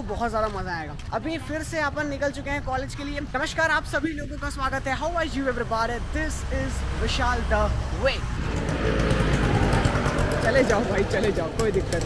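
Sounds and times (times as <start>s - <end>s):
auto-rickshaw engine rattling: 1.5s - 12.0s.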